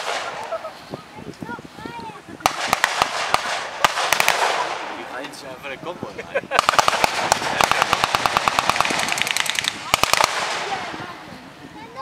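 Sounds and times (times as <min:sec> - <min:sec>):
machine guns firing: 0:02.4 - 0:04.9, 0:06.5 - 0:10.9.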